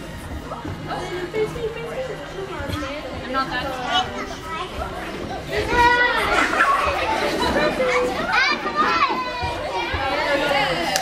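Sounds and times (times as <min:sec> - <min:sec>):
young children chattering: 0:00.0 - 0:11.0.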